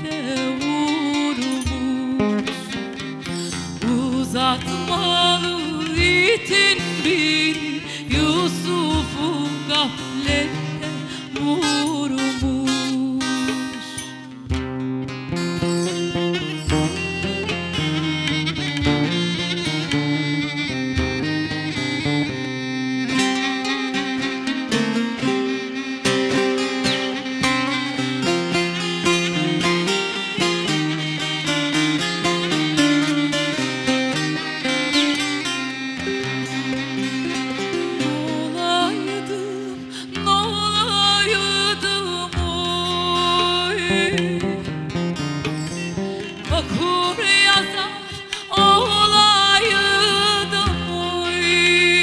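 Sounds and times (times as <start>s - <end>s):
plucked long-necked lute folk music: 0.0s - 52.0s.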